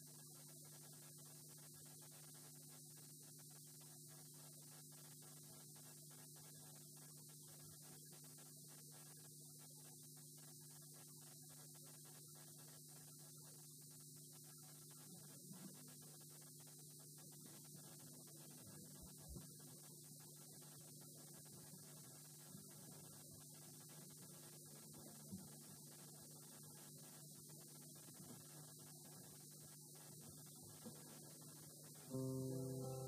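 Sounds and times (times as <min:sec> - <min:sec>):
faint electrical hum and hiss: 0:00.0 - 0:33.0.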